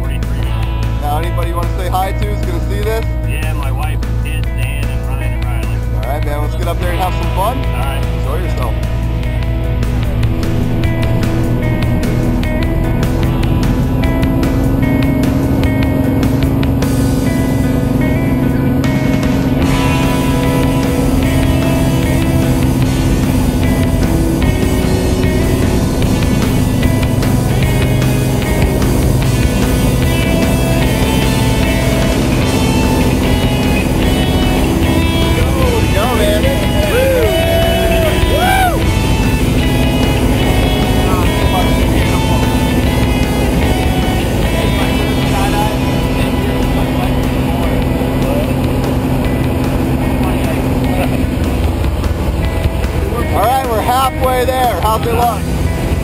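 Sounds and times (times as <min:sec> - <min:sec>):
music: 0:00.0 - 0:56.0
small plane engine and propeller: 0:00.0 - 0:56.0
person singing: 0:35.3 - 0:38.9.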